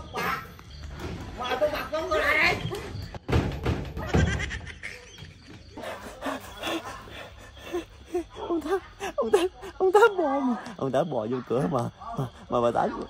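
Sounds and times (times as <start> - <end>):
door slamming shut: 3.2 - 4.6.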